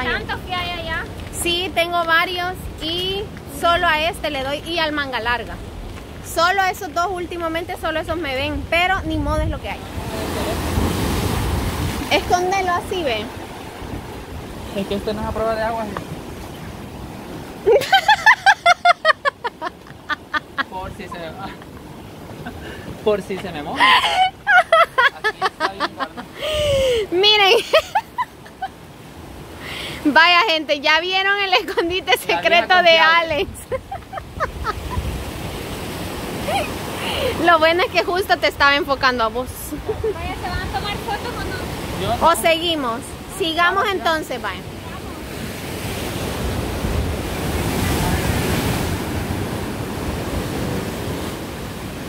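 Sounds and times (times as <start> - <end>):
wind buffeting microphone: 0.0 - 18.9, 26.2 - 29.8, 31.2 - 52.0
sea waves washing over rocks: 0.0 - 52.0.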